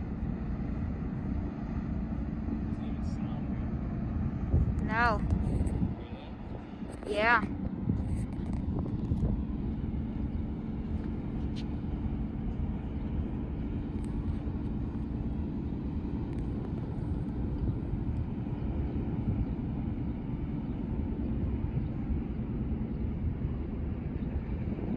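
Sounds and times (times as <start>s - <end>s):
distant ship engine drone: 0.0s - 24.9s.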